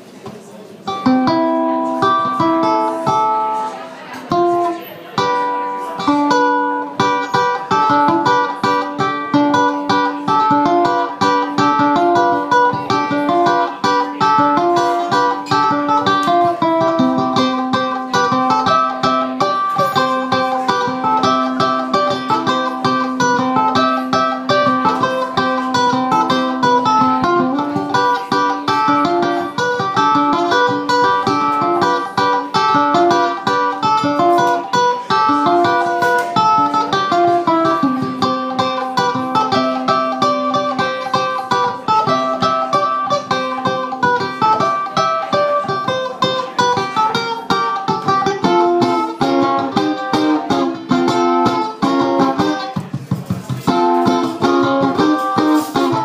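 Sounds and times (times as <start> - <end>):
ukulele picked melody: 0.0 - 56.0.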